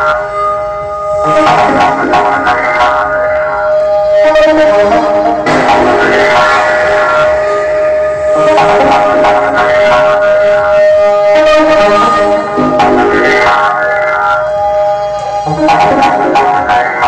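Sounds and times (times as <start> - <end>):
electronic dance music: 0.0 - 17.0.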